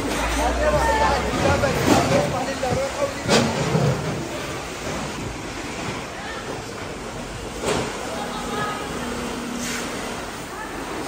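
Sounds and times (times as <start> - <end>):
indistinct voices: 0.0 - 4.6
background noise: 0.0 - 11.0.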